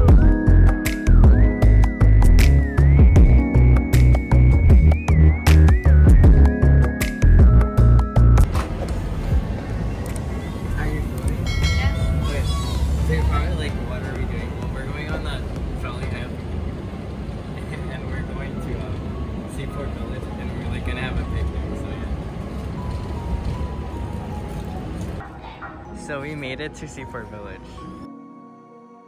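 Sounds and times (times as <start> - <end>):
trolley car deep rumble: 0.0 - 28.1.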